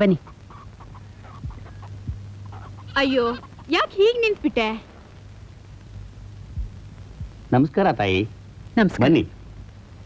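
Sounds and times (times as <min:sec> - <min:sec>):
chickens clucking: 0:00.0 - 0:04.4
steady low hum: 0:00.0 - 0:10.0
soft low thumps: 0:01.4 - 0:02.4, 0:06.4 - 0:07.5.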